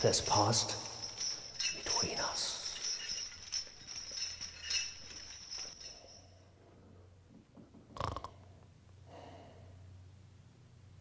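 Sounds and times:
high glassy tinkling: 0.0 - 6.6.

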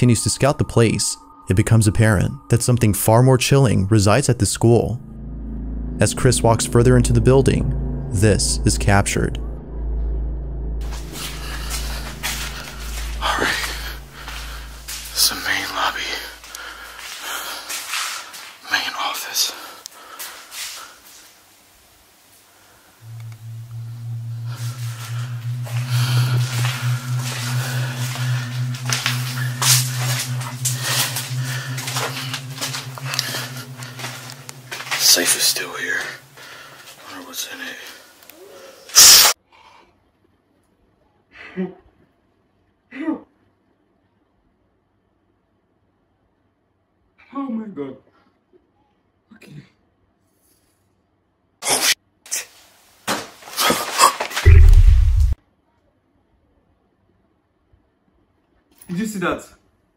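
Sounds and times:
steady low hum: 0.0 - 17.5, 23.0 - 37.3, 54.5 - 55.4
breathy whispering voice: 18.7 - 19.8.

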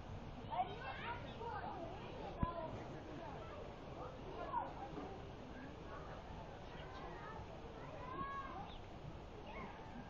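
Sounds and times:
outdoor noise: 0.0 - 10.0.

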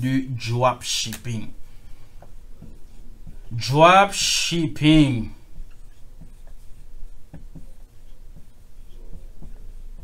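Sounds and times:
marker writing on a whiteboard: 1.0 - 10.0.

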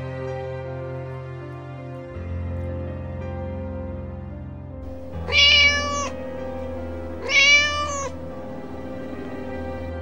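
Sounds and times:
soft background music: 0.0 - 10.0
kitten meowing: 4.9 - 9.8.

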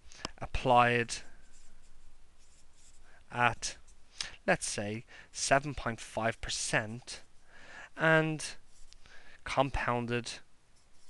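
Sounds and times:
marker pen scratching on paper: 1.2 - 4.0, 8.5 - 9.0, 10.8 - 11.0.

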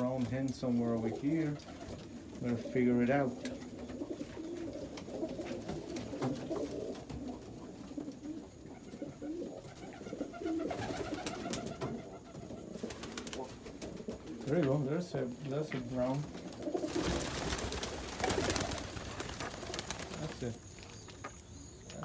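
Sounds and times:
pigeons cooing: 0.0 - 20.6.

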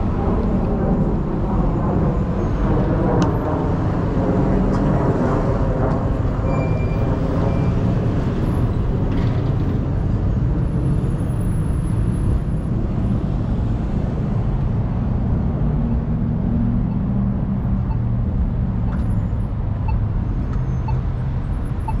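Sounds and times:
continuous low rumble: 0.0 - 22.0.

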